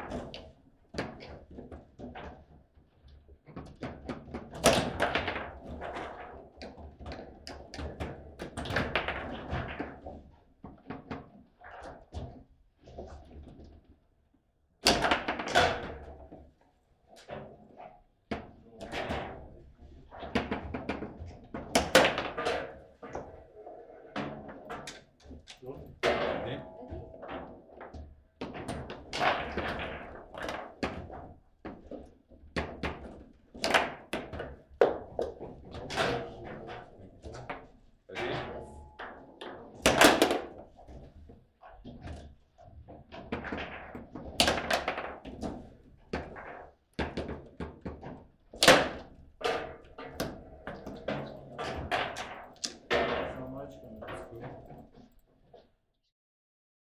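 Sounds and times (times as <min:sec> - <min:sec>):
foosball ball clacking: 0:20.2 - 0:23.4, 0:26.0 - 0:31.2, 0:43.2 - 0:48.0, 0:48.6 - 0:54.9.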